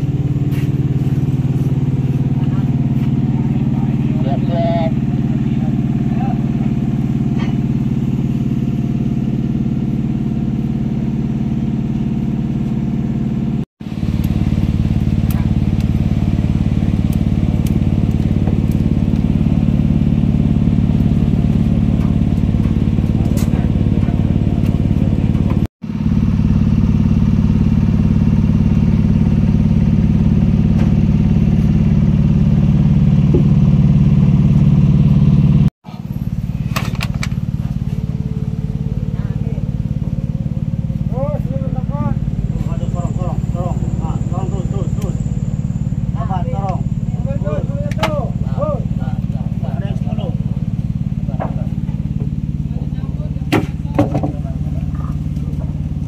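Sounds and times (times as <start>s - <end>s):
machinery humming: 0.0s - 56.0s.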